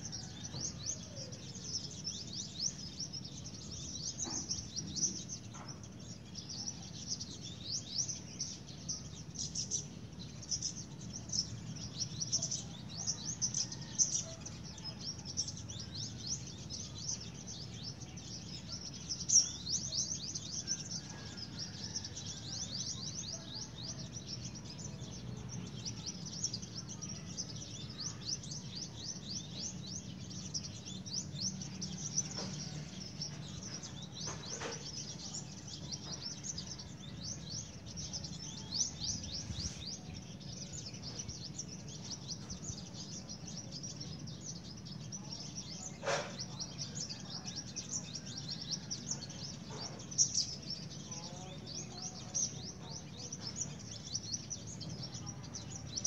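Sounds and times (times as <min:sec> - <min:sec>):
birds chirping: 0:00.0 - 0:56.0
low background hum: 0:00.0 - 0:56.0.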